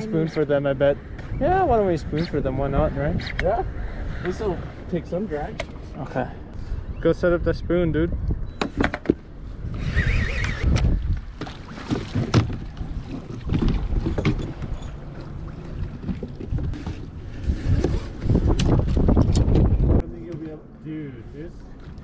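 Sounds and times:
wind buffeting microphone: 6.4s - 20.2s.

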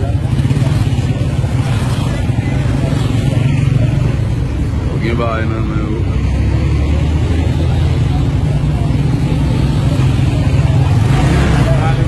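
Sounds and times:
vehicle engine droning: 0.0s - 12.0s
wind and road noise: 0.0s - 12.0s.

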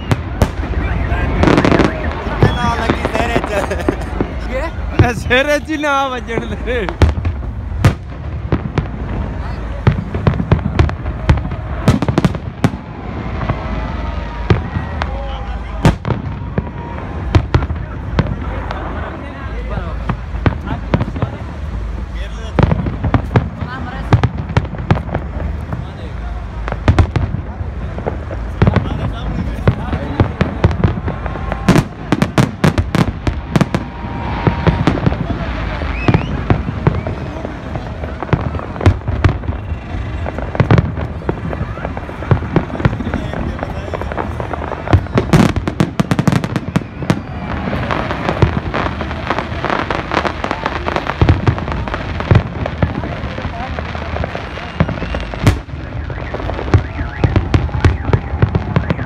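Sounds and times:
fireworks bangs and cracks: 0.0s - 59.0s
people's voices: 0.0s - 59.0s.

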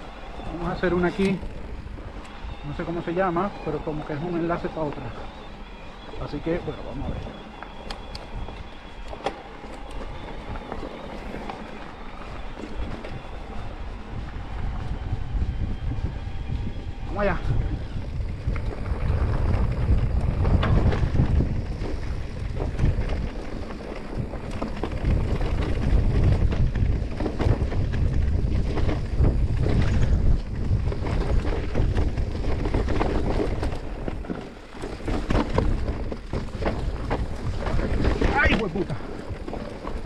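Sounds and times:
electric mountain bike rattling: 0.0s - 40.0s
wind buffeting microphone: 0.0s - 40.0s
tyres on loose stones: 18.3s - 40.0s.

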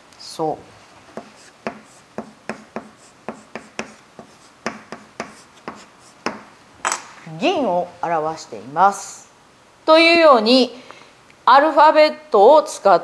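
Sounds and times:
chalk tapping and scraping on blackboard: 1.1s - 6.5s.

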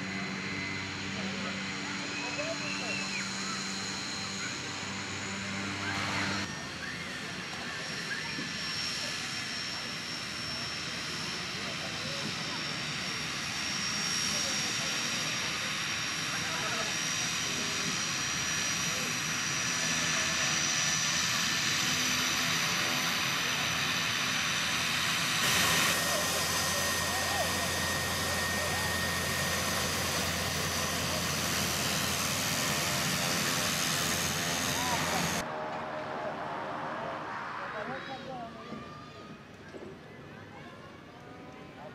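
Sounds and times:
propeller aircraft engine drone: 0.0s - 39.4s.

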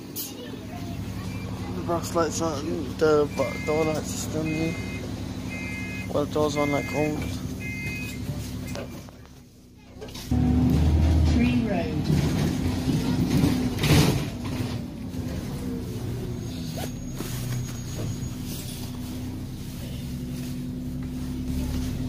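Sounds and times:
bus engine rumble: 0.0s - 22.0s.

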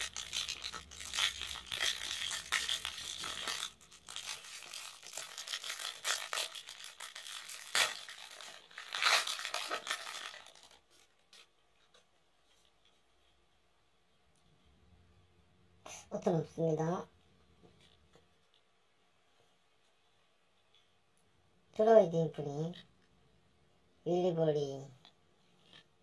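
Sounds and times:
foil wrapper crinkling and tearing: 0.0s - 11.5s.

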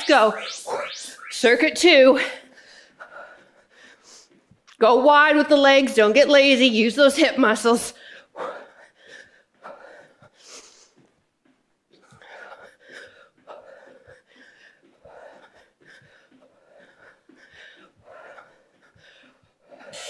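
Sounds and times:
woman breathing hard: 8.0s - 11.0s, 12.0s - 20.0s.

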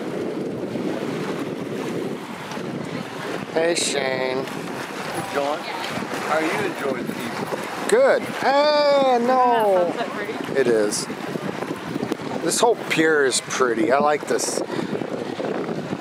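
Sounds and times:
small waves lapping on shore: 0.0s - 16.0s
wind on microphone: 0.0s - 16.0s
faint voices: 2.8s - 11.1s.

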